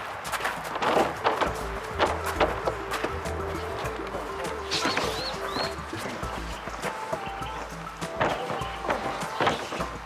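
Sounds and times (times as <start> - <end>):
background music with low pulse: 0.0 - 10.0.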